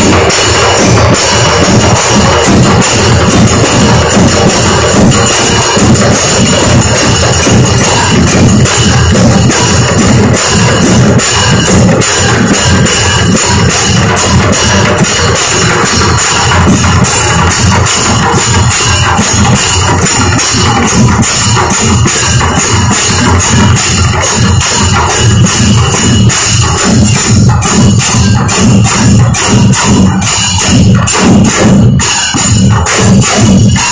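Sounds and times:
barrel drums beaten with sticks: 0:00.0 - 0:33.9
hand cymbals ringing: 0:00.0 - 0:33.9.

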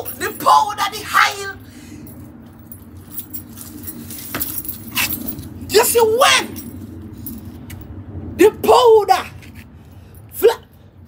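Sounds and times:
metal chain necklace jangling: 0:00.0 - 0:07.8
low rumble: 0:01.5 - 0:11.0.

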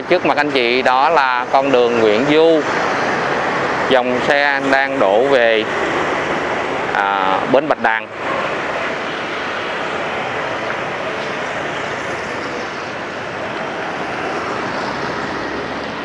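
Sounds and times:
cars passing: 0:00.0 - 0:16.0
motorbikes passing: 0:00.0 - 0:16.0.

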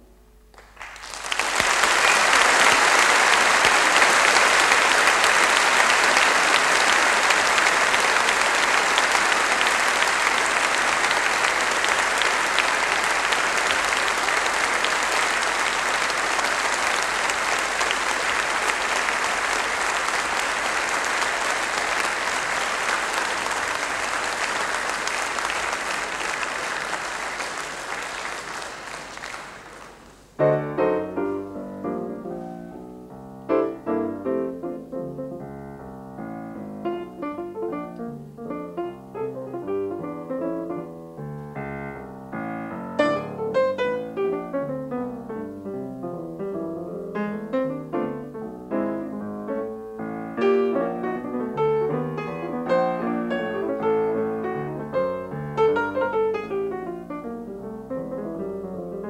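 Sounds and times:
piano piece: 0:00.0 - 0:28.6, 0:29.6 - 0:59.0
audience applauding: 0:00.5 - 0:31.6, 0:42.4 - 0:44.6, 0:50.0 - 0:56.8.

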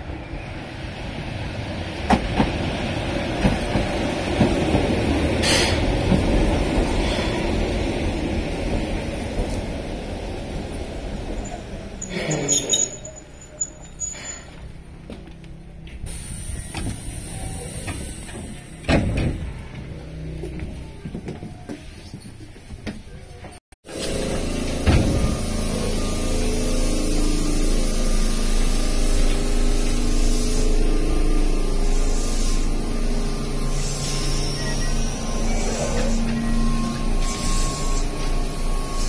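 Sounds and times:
train running with motor hum: 0:00.0 - 0:13.6, 0:23.8 - 0:39.0.

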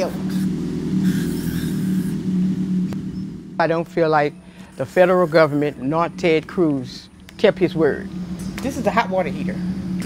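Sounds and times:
low hum of held pitches: 0:00.0 - 0:10.0.

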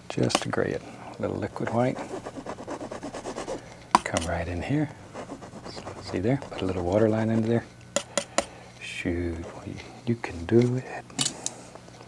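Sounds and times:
palette knife scraping paint: 0:01.5 - 0:08.4.

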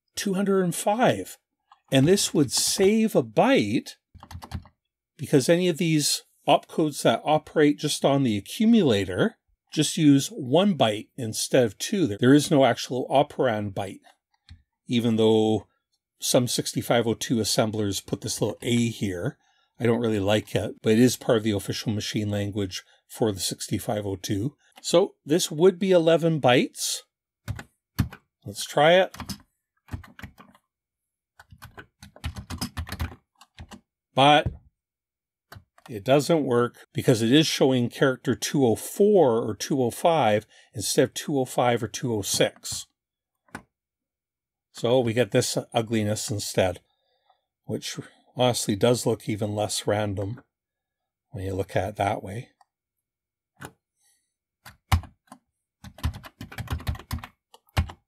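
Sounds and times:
typing on a keyboard: 0:04.2 - 0:04.7, 0:27.5 - 0:28.2, 0:29.1 - 0:30.6, 0:31.4 - 0:33.8, 0:54.7 - 0:58.0.

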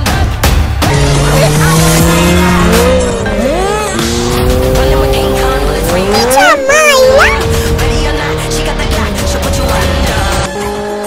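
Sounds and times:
background music: 0:00.0 - 0:11.0
motorcycle engines running: 0:00.8 - 0:11.0.

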